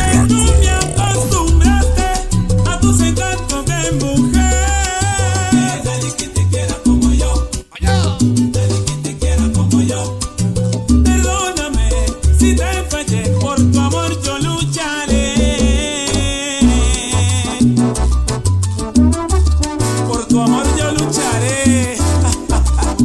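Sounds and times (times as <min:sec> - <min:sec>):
salsa music over sound system: 0:00.0 - 0:23.0.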